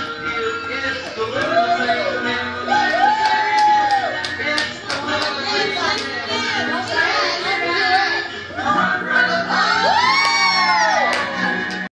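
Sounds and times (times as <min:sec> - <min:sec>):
music from speaker: 0:00.0 - 0:11.9
children shouting and cheering: 0:01.1 - 0:04.4, 0:09.4 - 0:11.8.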